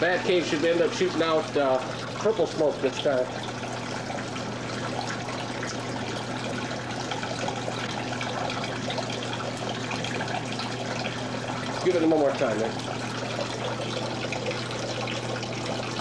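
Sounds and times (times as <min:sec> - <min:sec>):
water trickling and splashing: 0:00.0 - 0:16.0.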